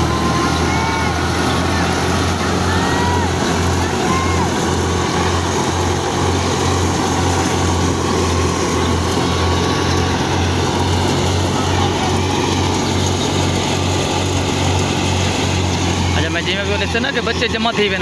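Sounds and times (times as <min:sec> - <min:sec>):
thresher mechanical din: 0:00.0 - 0:18.0
tractor engine: 0:00.0 - 0:18.0.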